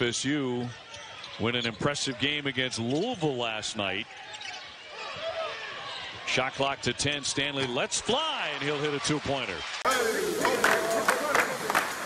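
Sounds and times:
faint shoe squeaks on court: 0.7s - 2.0s, 4.1s - 6.2s.

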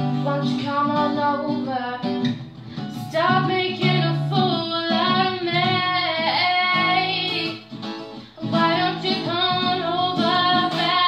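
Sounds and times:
acoustic guitar: 0.0s - 11.0s.

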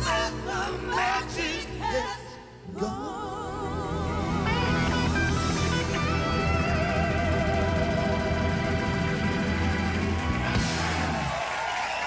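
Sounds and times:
live rock band playing ballad: 4.0s - 11.2s
electric guitar held notes: 4.6s - 10.8s.

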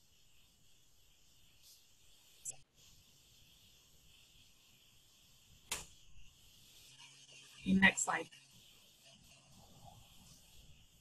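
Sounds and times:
faint audio line hiss: 0.0s - 11.0s.

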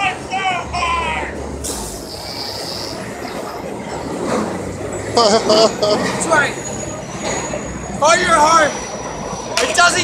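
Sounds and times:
city traffic noise: 0.0s - 10.0s.

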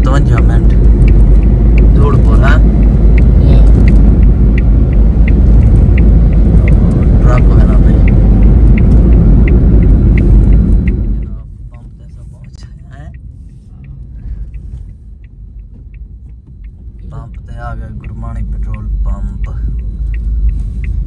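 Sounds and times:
car road and engine rumble: 0.0s - 21.0s
turn signal ticking: 0.0s - 21.0s.

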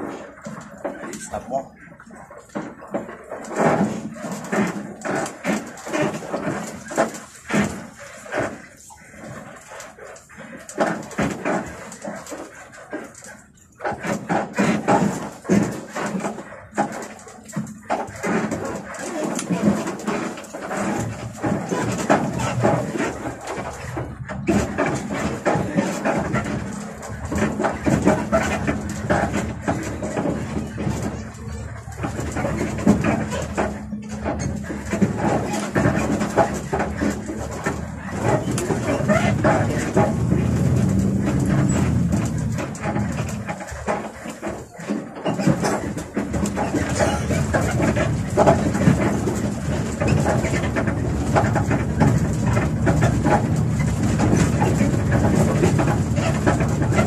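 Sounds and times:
people talking: 0.9s - 1.9s
bus engine humming: 26.7s - 43.5s.

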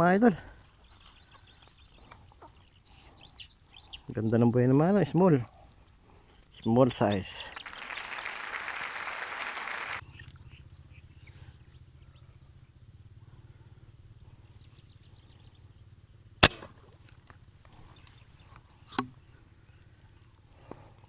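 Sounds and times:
low steady rumble: 10.0s - 21.0s.

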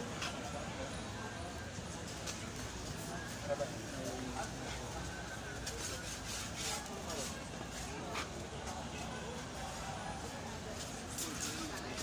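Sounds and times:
indistinct voices of passers-by: 0.0s - 12.0s
rustling and rubbing close by: 5.4s - 8.5s.

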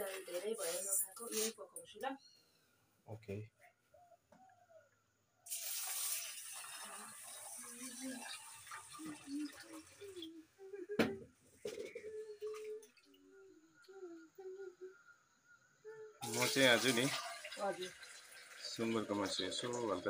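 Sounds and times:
water pouring into metal bowl: 5.5s - 10.3s, 16.2s - 20.0s.

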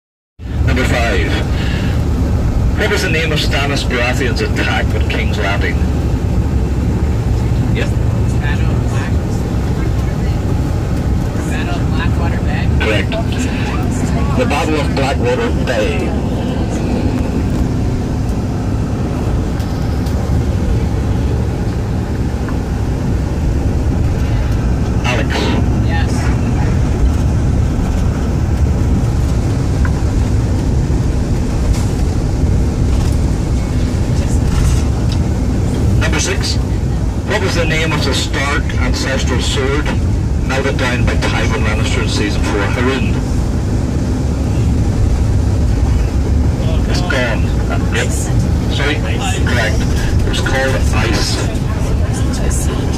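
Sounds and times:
bus engine and road noise: 0.4s - 52.9s.

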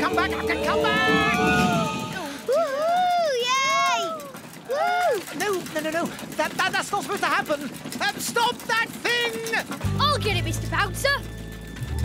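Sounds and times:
cartoon voices crying out: 1.3s - 5.2s.

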